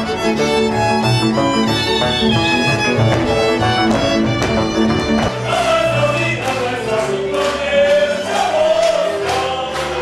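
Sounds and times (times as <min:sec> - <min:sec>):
instrumental accompaniment with beat: 0:00.0 - 0:10.0
group singing folk song: 0:03.3 - 0:10.0.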